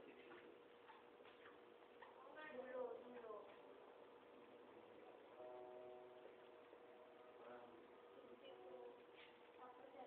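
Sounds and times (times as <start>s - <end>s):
faint steady tone: 3.6s - 9.2s.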